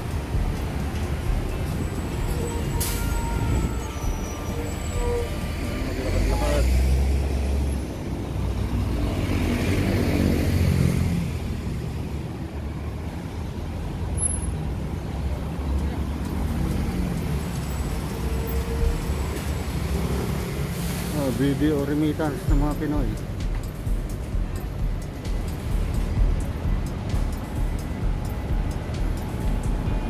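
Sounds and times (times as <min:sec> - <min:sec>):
buses and cars driving past: 0:00.0 - 0:30.0
deep engine rumble: 0:22.2 - 0:30.0.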